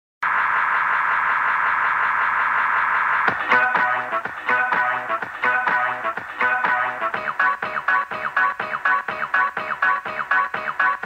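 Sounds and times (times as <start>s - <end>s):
filtered static hiss: 3.3s - 10.9s.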